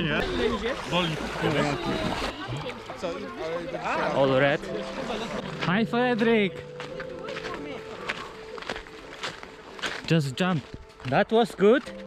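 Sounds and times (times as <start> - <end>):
low indistinct voices: 0.0 - 9.8.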